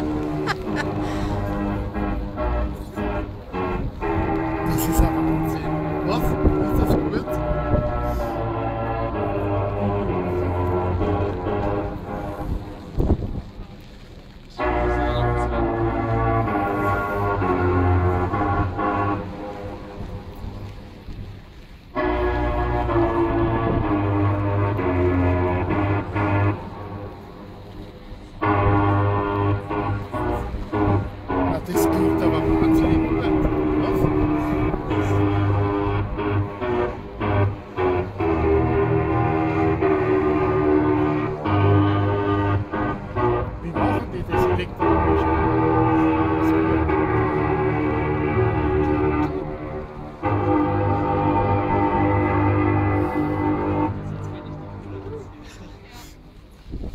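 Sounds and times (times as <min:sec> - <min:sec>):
ship's musical horn playing a tune: 0:00.0 - 0:56.9.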